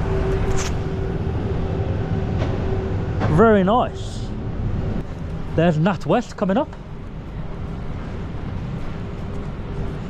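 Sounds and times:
city street traffic rumble: 0:00.0 - 0:10.0
faint engine hum: 0:00.0 - 0:10.0.

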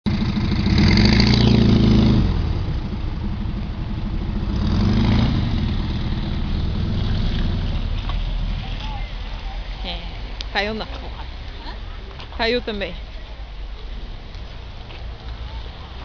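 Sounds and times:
engine running: 0:00.1 - 0:16.0.

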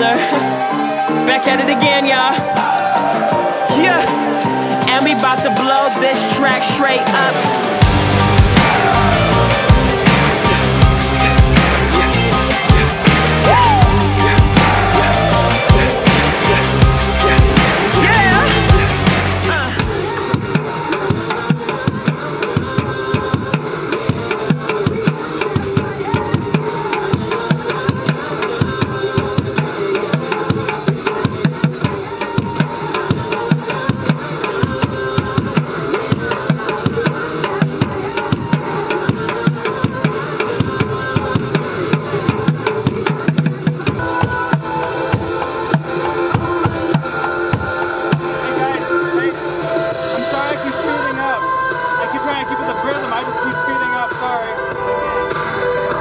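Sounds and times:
recorded pop song: 0:00.0 - 0:56.0.

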